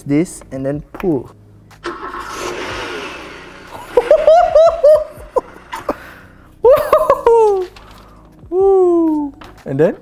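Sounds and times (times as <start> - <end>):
man laughing: 3.8 - 7.7.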